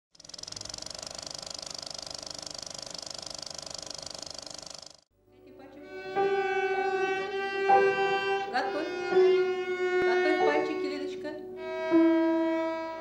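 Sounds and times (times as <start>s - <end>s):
film projector clattering: 0.1s - 5.0s
violin note: 5.4s - 13.0s.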